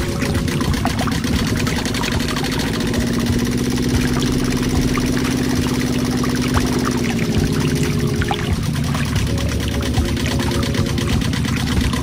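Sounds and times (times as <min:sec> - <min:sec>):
small water pump motor running: 0:00.0 - 0:12.0.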